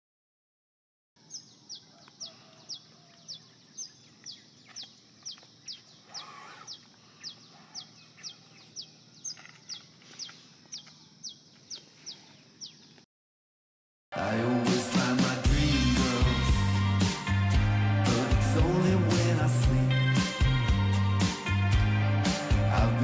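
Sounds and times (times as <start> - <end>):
bird chirping: 1.2 - 13.1.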